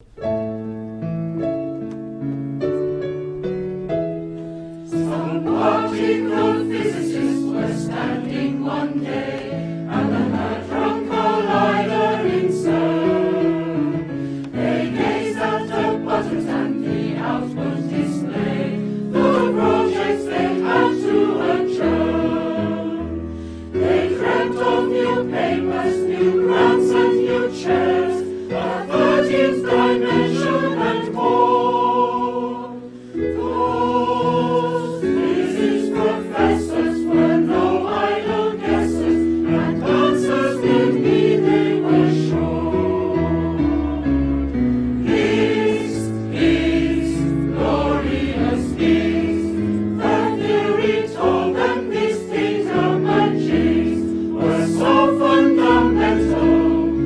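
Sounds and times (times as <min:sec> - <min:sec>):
choir singing held chords: 0:04.8 - 0:57.0
short breaths: 0:14.2 - 0:14.4, 0:23.3 - 0:23.7.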